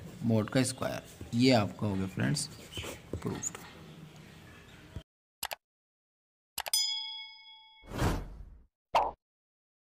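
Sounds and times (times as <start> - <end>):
bell ding: 6.7 - 7.9.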